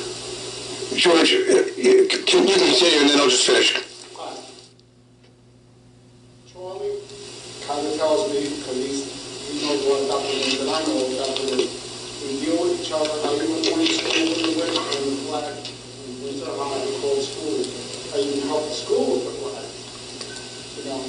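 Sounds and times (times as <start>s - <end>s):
person talking in echoing room: 6.5s - 19.9s.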